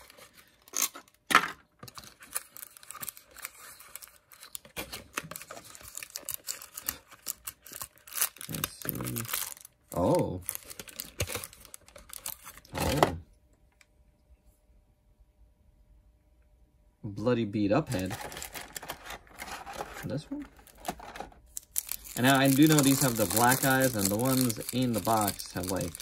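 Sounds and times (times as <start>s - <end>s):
plastic bag crinkling: 1.8s - 13.0s, 17.9s - 26.0s.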